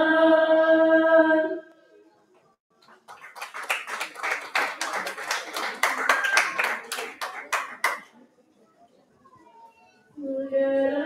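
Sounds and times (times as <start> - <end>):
group of people clapping: 2.7 - 8.1.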